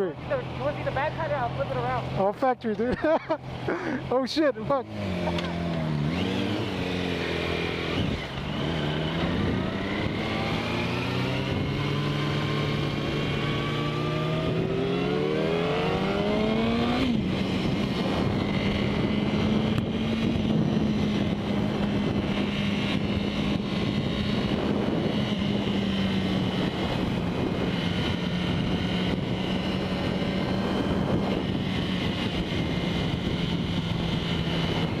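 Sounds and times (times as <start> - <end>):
motorcycle engine revving: 2.9 - 35.0
wind rushing over microphone: 4.6 - 35.0.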